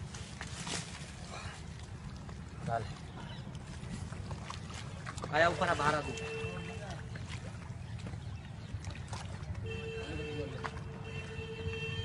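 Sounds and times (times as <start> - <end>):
water sloshing around wader: 0.0 - 12.0.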